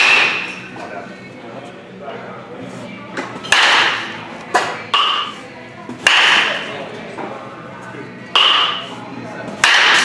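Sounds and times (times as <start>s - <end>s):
bat hitting baseball: 3.5s - 5.3s, 6.0s - 6.7s, 8.4s - 8.8s, 9.6s - 10.0s.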